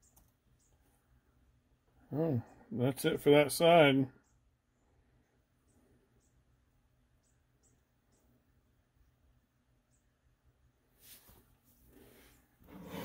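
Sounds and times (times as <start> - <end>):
faint high-pitched chirps: 4.0 - 8.7.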